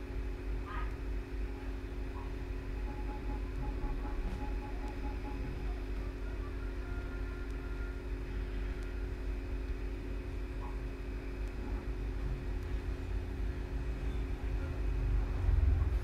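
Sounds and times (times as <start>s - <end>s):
faint drone: 0.0s - 16.0s
low hum and rumble: 0.0s - 16.0s.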